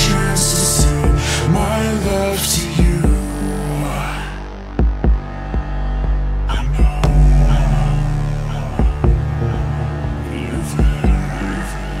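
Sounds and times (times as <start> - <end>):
deep held bass: 0.0 - 12.0
kick drum hit: 4.8 - 5.7, 8.8 - 9.3.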